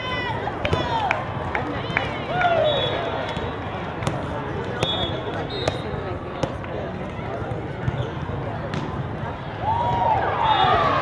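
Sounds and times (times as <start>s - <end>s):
players calling out and cheering: 0.0s - 11.0s.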